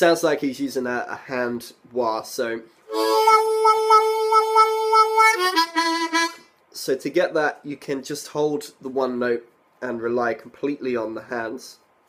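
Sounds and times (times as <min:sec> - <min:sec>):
harmonica wah-wah note: 0:02.9 - 0:06.4.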